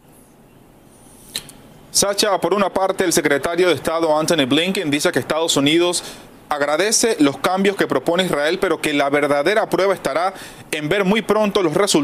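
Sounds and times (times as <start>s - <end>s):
faint microphone hiss: 0.0s - 12.0s
short sharp click: 1.3s - 1.6s.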